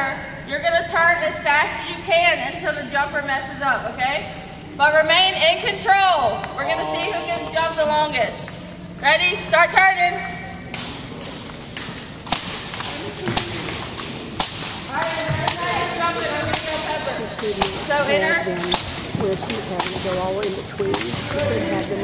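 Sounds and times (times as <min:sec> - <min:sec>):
jump rope slapping wooden floor: 0:10.7 - 0:18.0.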